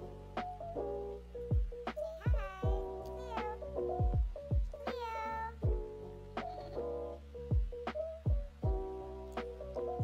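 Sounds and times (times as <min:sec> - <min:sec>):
music with deep kick drum: 0:00.1 - 0:05.0, 0:05.6 - 0:10.0.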